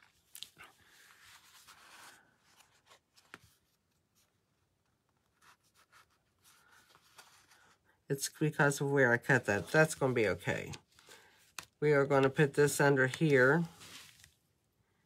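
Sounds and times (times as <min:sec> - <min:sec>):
cardstock rustling and sliding: 0:00.0 - 0:03.8, 0:09.4 - 0:14.4.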